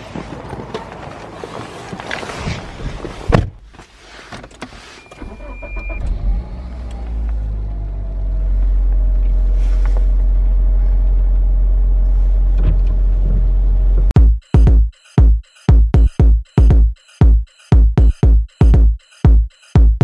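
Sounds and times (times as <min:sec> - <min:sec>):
car door shutting: 0:03.3 - 0:03.6
car engine drone inside cabin: 0:05.2 - 0:14.1.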